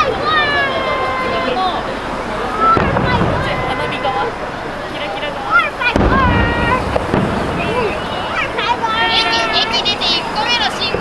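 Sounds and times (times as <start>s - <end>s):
people's voices: 0.0s - 11.0s
firework bang: 2.5s - 5.0s, 5.7s - 11.0s.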